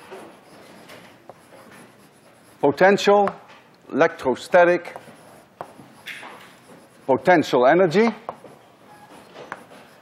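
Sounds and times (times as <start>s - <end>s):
chalk scratching on blackboard: 0.0s - 3.4s, 4.2s - 10.0s
chalk tap on blackboard: 3.2s - 3.4s, 4.8s - 6.9s, 8.1s - 8.5s.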